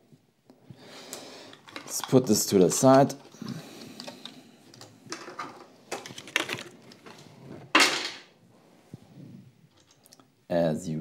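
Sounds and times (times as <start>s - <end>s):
plastic packaging crinkling: 5.1s - 7.3s.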